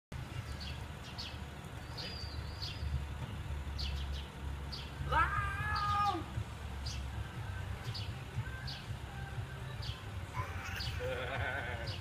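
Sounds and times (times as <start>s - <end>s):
low steady rumble: 0.2s - 12.0s
small birds chirping: 0.2s - 12.0s.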